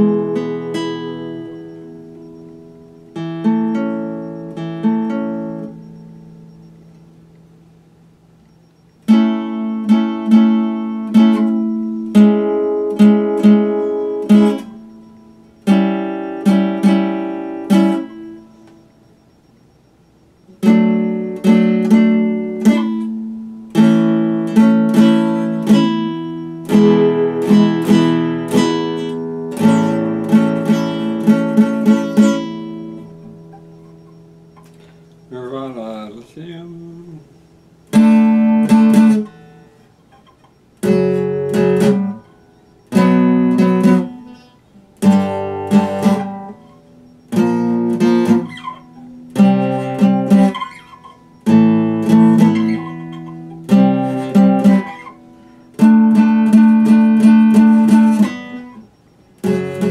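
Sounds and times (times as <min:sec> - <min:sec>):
fingerstyle classical guitar: 0:00.0 - 0:07.5, 0:09.0 - 0:19.0, 0:20.5 - 0:59.9.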